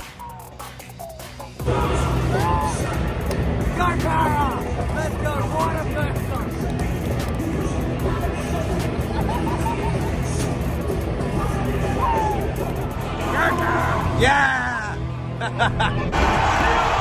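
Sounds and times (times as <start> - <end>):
music over loudspeakers: 0.0 - 15.1
man shouting and whooping: 2.2 - 3.0, 3.7 - 5.6, 11.5 - 15.0
stadium crowd noise: 15.9 - 17.0.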